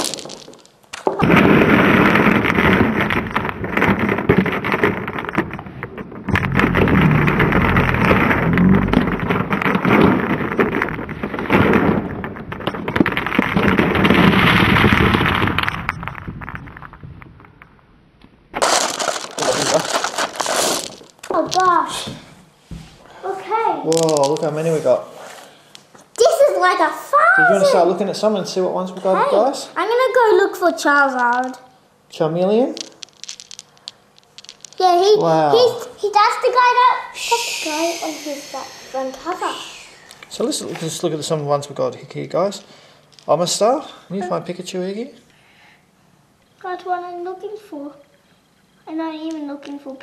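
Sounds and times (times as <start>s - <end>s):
glass marbles pouring and rattling: 0.0s - 0.8s, 18.6s - 21.7s, 23.9s - 24.7s, 32.6s - 35.7s.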